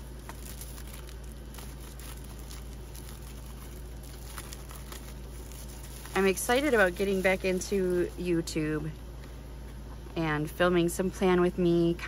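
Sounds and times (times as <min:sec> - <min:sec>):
cellophane crinkling: 0:00.0 - 0:08.4
steady low hum: 0:00.0 - 0:12.0.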